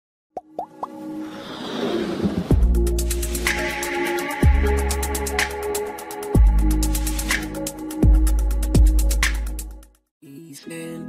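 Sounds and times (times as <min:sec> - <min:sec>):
rising popping plops: 0:00.4 - 0:01.0.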